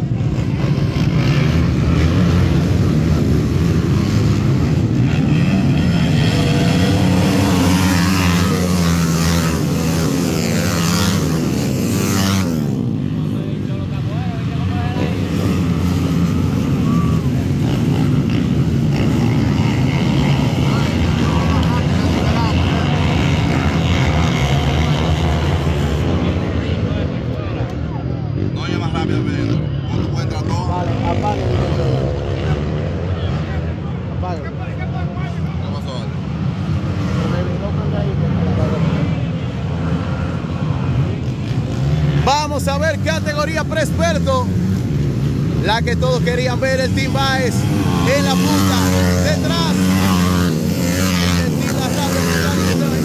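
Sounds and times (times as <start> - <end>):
dirt bike engines revving: 0.0 - 53.0.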